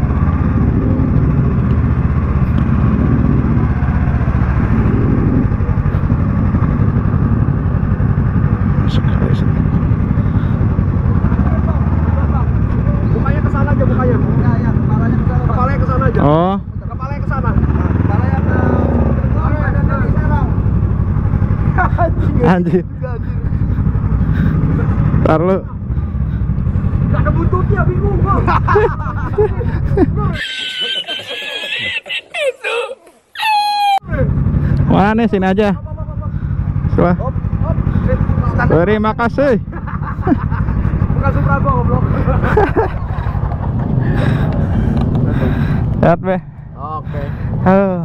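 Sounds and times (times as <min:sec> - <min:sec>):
motorcycle engine idling: 0:00.0 - 0:30.4, 0:34.1 - 0:48.0.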